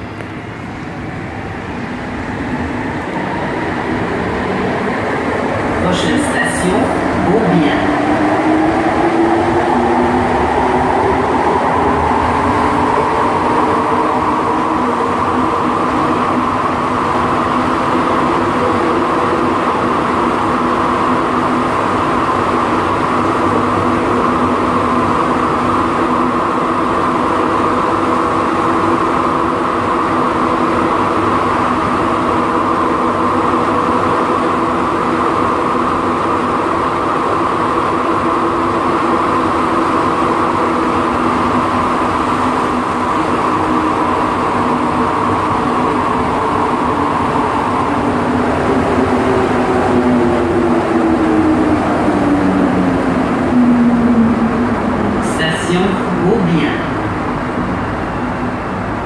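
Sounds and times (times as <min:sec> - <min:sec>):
metro train rumble: 0:00.0 - 0:59.0
steady multi-pitch hum: 0:52.6 - 0:59.0.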